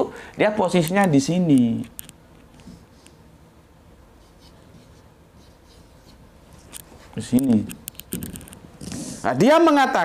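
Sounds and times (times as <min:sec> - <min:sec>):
marker pen on whiteboard: 0:00.7 - 0:03.3, 0:04.1 - 0:09.4.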